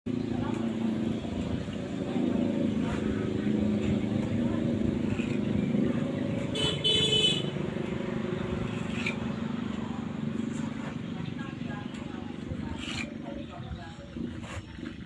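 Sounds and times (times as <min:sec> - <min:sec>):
motor vehicle engine running: 0:00.1 - 0:15.0
horn toot: 0:06.4 - 0:07.6.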